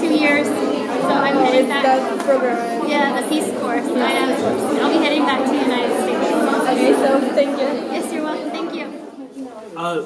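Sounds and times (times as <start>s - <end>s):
crowd chatter: 0.0s - 10.0s
people talking: 0.0s - 10.0s.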